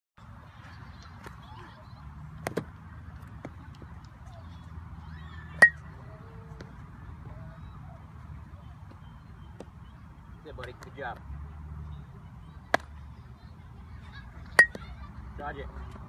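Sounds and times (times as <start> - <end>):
metal bat hitting baseball: 5.6 - 5.8.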